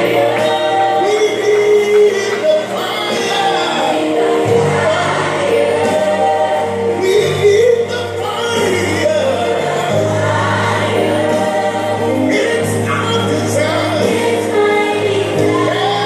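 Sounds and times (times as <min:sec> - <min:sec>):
choir singing gospel music: 0:00.0 - 0:16.0.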